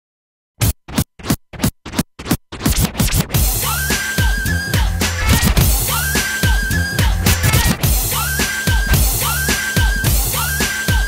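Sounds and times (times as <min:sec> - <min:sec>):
vinyl scratching on turntable: 0:00.6 - 0:11.0
music beat: 0:02.7 - 0:11.0.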